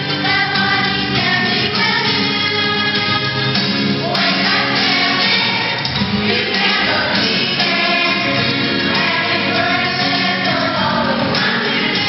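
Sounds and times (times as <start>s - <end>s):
children's choir singing: 0.0s - 12.0s
musical accompaniment: 0.0s - 12.0s.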